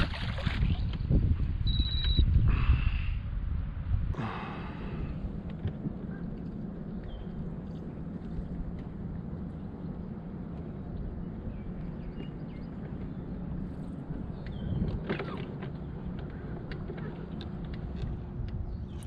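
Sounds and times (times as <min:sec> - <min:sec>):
low hum: 0:00.0 - 0:19.0
water noise around boat: 0:00.0 - 0:19.0
wind: 0:00.0 - 0:19.0
short high beep: 0:01.7 - 0:02.3.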